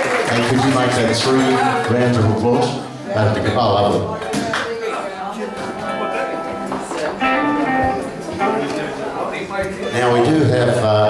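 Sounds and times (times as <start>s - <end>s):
people talking: 0.0s - 11.0s
electric guitar notes: 5.4s - 9.2s.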